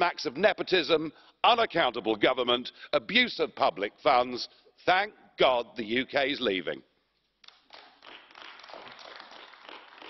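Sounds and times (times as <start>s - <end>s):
faint scattered applause: 7.4s - 10.0s.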